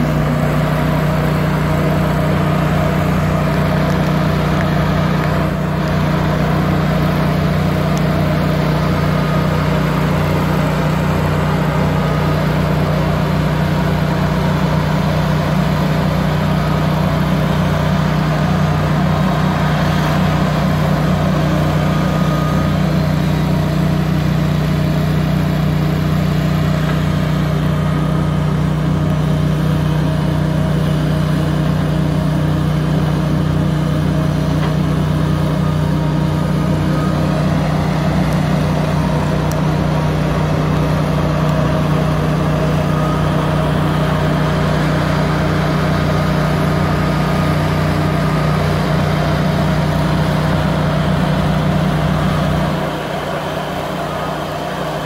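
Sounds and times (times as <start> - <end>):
diesel engine droning: 0.0 - 55.0.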